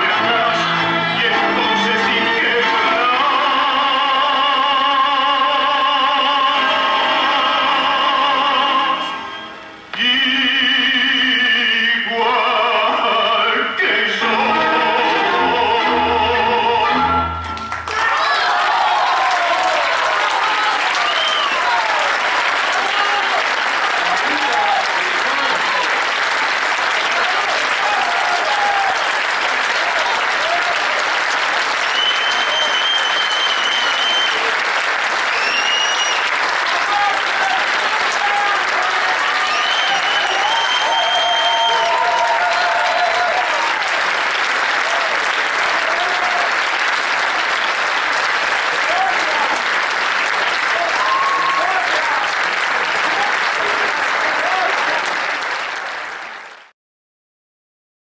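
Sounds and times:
audience applauding: 0:17.4 - 0:56.7
high whistles: 0:21.0 - 0:21.6, 0:31.8 - 0:34.5, 0:35.2 - 0:36.3, 0:39.4 - 0:42.0, 0:50.9 - 0:51.6.

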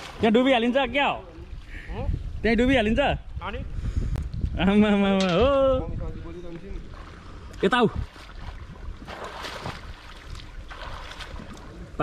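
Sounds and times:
pool water splashing: 0:00.0 - 0:02.0, 0:06.2 - 0:12.0
wind rumble on microphone: 0:00.7 - 0:12.0.

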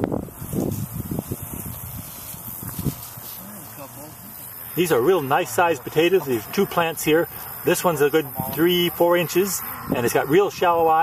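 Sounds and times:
wind on microphone: 0:00.0 - 0:03.3
rustling of vines and weeds: 0:00.1 - 0:05.4.

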